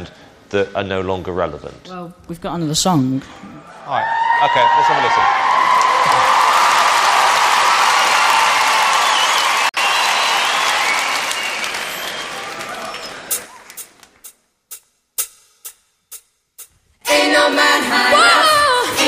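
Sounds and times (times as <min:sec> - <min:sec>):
audience applauding and cheering: 0:03.9 - 0:14.2.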